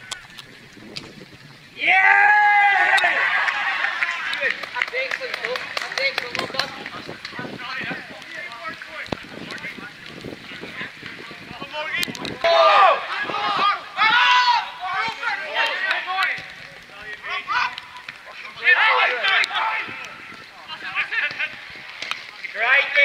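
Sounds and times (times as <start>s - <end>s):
men shouting calls: 1.8s - 9.0s, 11.4s - 16.4s, 17.0s - 21.6s.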